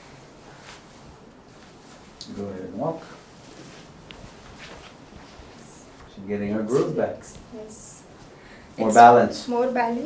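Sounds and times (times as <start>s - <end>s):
barefoot footsteps on carpet: 3.3s - 6.1s.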